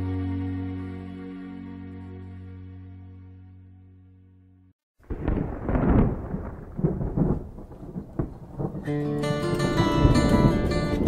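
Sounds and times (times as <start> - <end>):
rain: 5.0 - 11.0
rumbling thunder with cracks: 5.0 - 11.0.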